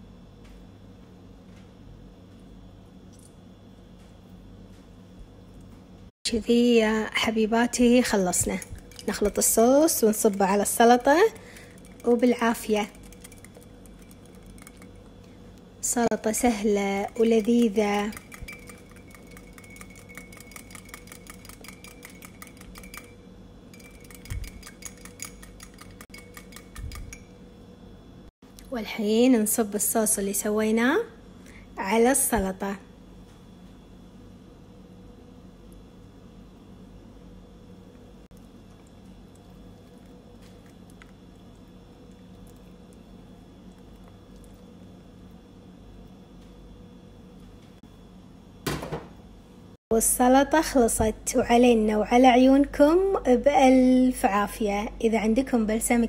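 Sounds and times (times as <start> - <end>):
kitchen background hum: 0.0 - 56.0
metal whisk clinking against glass: 8.4 - 15.1, 17.0 - 27.4.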